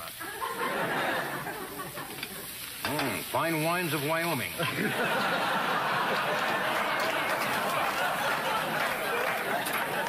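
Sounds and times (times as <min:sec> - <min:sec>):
studio audience laughing: 0:00.1 - 0:02.6, 0:04.5 - 0:10.0.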